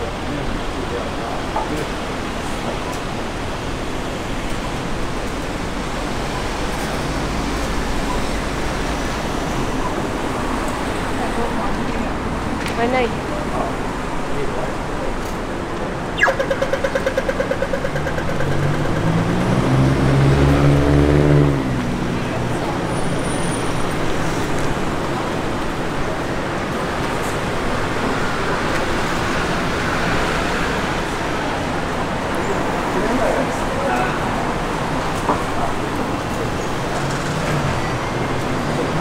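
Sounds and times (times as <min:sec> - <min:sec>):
city traffic: 0:00.0 - 0:39.0
vehicle engine: 0:14.4 - 0:39.0
pedestrian crossing signal ticking: 0:16.2 - 0:19.2.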